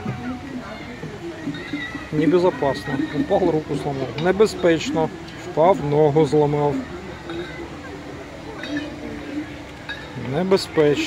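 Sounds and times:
faint distant voices: 0:00.0 - 0:11.0
low outdoor background noise: 0:00.0 - 0:11.0.

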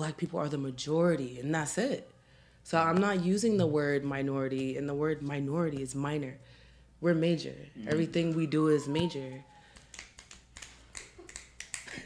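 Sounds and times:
finger snapping: 0:09.6 - 0:12.0.

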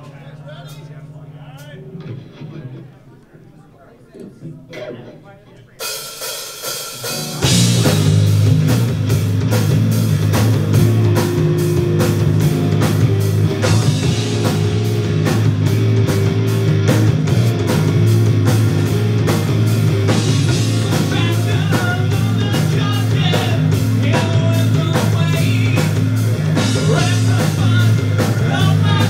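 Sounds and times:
live rock band playing: 0:00.0 - 0:03.3, 0:04.7 - 0:29.0
electric guitars: 0:00.0 - 0:03.5, 0:04.2 - 0:29.0
drum kit beat: 0:04.4 - 0:29.0.

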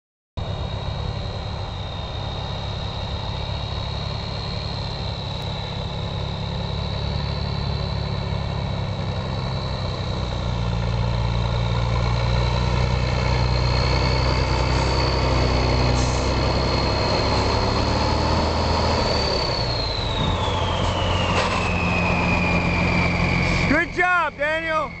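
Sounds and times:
truck engine deep rumble: 0:00.4 - 0:25.0
turbo whine: 0:00.4 - 0:25.0.

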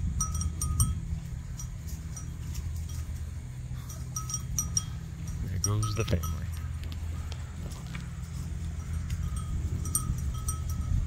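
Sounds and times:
faint ringing tone: 0:00.0 - 0:11.0
steady low rumble: 0:00.0 - 0:11.0.

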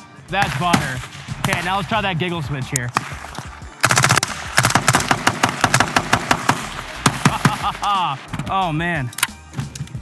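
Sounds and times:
rifle automatic fire: 0:03.8 - 0:07.7.

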